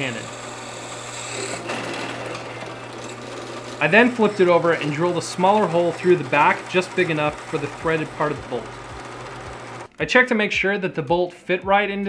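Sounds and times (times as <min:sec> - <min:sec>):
drill bit boring into wood: 0:00.0 - 0:09.9
drill press humming: 0:00.0 - 0:09.9.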